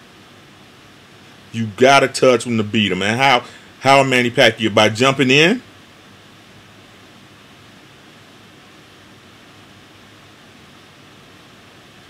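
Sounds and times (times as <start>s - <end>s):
faint room noise hiss: 0.0s - 12.0s.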